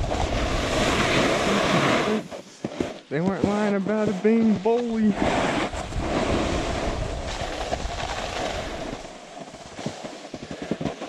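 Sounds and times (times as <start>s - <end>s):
snowboard scraping over snow: 0.0s - 11.0s
wind on microphone: 5.0s - 9.2s.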